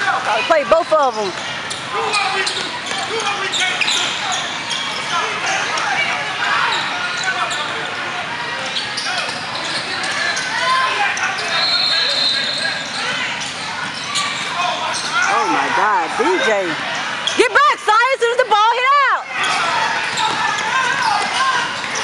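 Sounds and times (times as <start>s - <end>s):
hubbub of echoing voices: 0.0s - 22.0s
sneakers squeaking on court: 0.7s - 17.6s, 19.3s - 22.0s.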